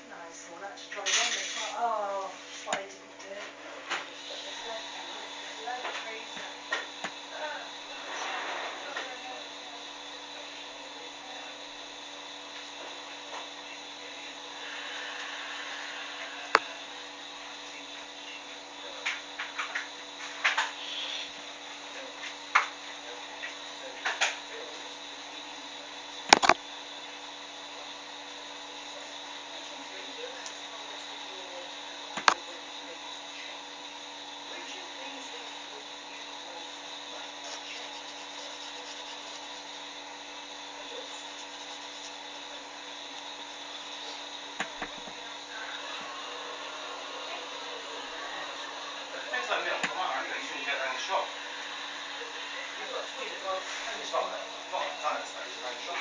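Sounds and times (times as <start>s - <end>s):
faint hum: 0.0s - 56.0s
muffled voices: 0.0s - 56.0s.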